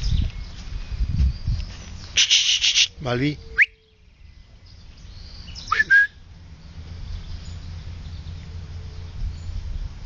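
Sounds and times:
person whistling for dog: 0:05.7 - 0:06.2.

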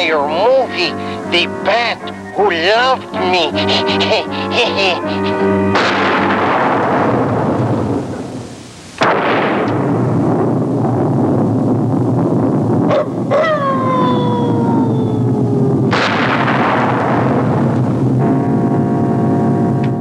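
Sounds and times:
low rumble: 0:05.6 - 0:19.8
thunderous crash: 0:05.7 - 0:18.6
long falling wail: 0:12.9 - 0:16.0.

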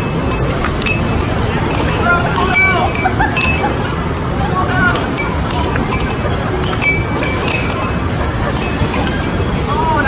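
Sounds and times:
air hockey puck clacking: 0:00.0 - 0:09.5.

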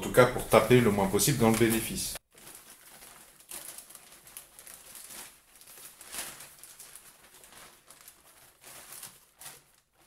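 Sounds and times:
plastic bag rustling: 0:00.4 - 0:10.0.

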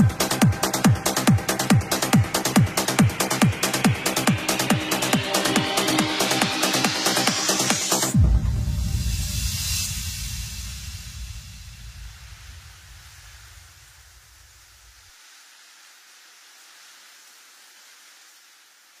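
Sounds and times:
faint hiss: 0:00.0 - 0:19.0
white noise wash: 0:00.0 - 0:19.0
deep bass rumble: 0:08.1 - 0:14.1.

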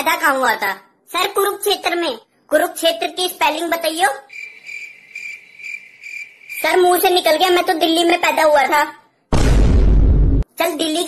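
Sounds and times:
crickets chirping: 0:01.6 - 0:07.7.

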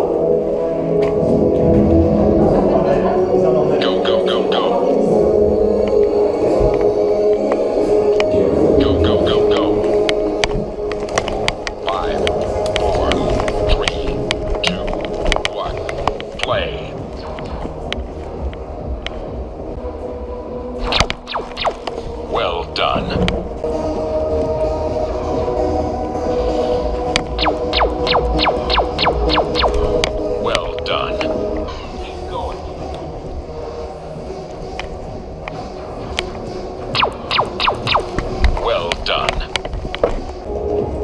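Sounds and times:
murmur of voices: 0:00.0 - 0:18.3
low hum: 0:04.7 - 0:41.0
electronic blaster shots: 0:20.8 - 0:21.9, 0:27.4 - 0:30.0, 0:37.0 - 0:38.2
laser tag gun zaps: 0:20.8 - 0:22.0, 0:27.3 - 0:30.1, 0:36.9 - 0:38.4
scattered clicks: 0:27.1 - 0:30.2, 0:36.9 - 0:40.1.

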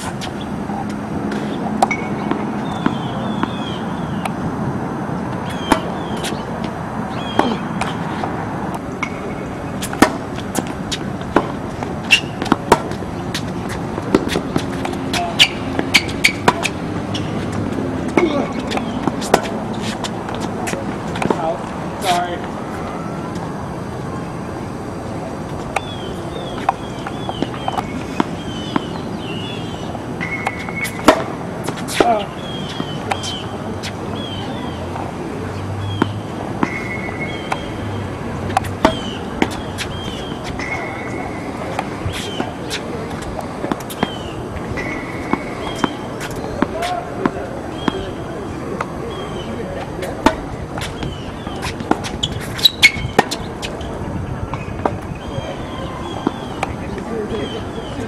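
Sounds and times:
balls bouncing on hard court: 0:00.0 - 0:04.4, 0:05.3 - 0:22.5, 0:25.6 - 0:35.1, 0:35.8 - 0:53.9
birds chirping: 0:00.0 - 0:04.4, 0:05.1 - 0:58.0
tennis balls struck by rackets: 0:00.0 - 0:22.6, 0:24.8 - 0:58.0.

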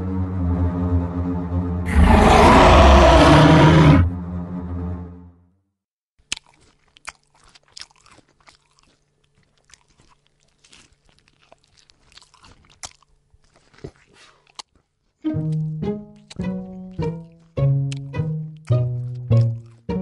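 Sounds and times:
crunching chewing: 0:06.2 - 0:19.9
plucked string music: 0:15.2 - 0:20.0.

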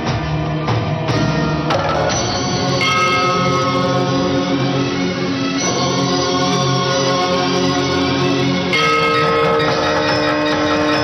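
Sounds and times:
loud theme music: 0:00.0 - 0:11.0.

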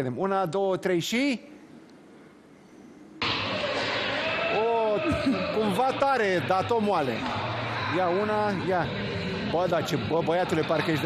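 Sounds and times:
echoing hall noise: 0:00.9 - 0:11.0.

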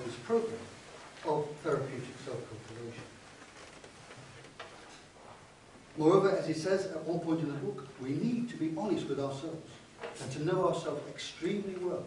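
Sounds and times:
paper pages rustling: 0:00.9 - 0:05.1.

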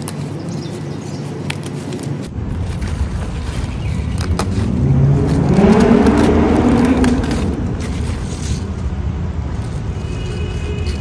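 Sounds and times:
vehicle engine speeding up: 0:02.4 - 0:09.2.

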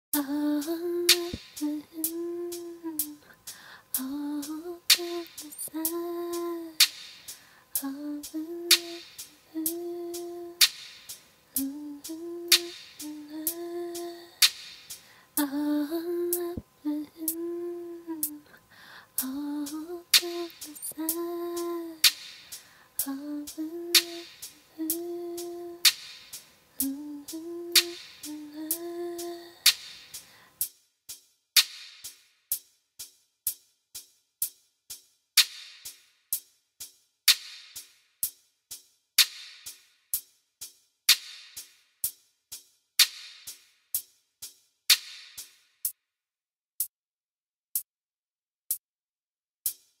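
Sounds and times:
sharp rhythmic clicks: 0:00.1 - 0:17.4, 0:18.2 - 0:18.4, 0:19.2 - 0:30.2
woman humming: 0:00.2 - 0:03.4, 0:04.0 - 0:06.8, 0:07.8 - 0:10.6, 0:11.6 - 0:14.4, 0:15.4 - 0:18.6, 0:19.2 - 0:22.0, 0:23.0 - 0:25.9, 0:26.8 - 0:29.6
soft percussive ticks: 0:00.2 - 0:15.6, 0:18.2 - 0:18.4, 0:19.2 - 0:30.7.

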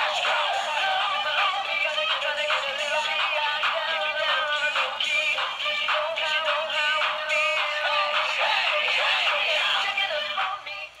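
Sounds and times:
toy frogs singing a song: 0:00.0 - 0:11.0.

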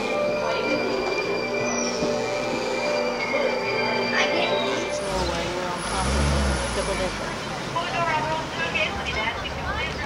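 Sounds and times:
bus engine rumble: 0:00.0 - 0:10.0
road noise: 0:00.0 - 0:10.0
voices: 0:00.0 - 0:10.0.

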